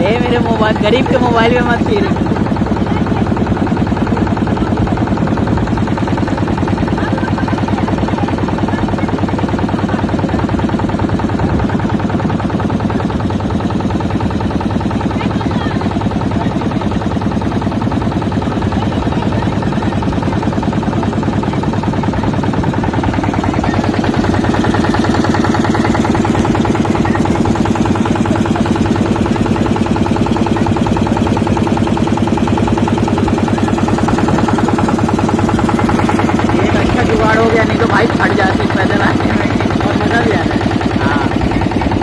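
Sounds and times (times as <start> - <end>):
motorboat engine running: 0.0 - 42.0.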